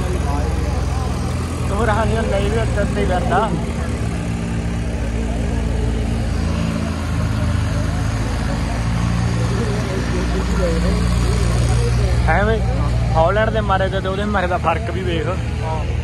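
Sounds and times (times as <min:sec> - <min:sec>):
diesel tractor engine running: 0:00.0 - 0:16.0
faint voices: 0:00.0 - 0:16.0.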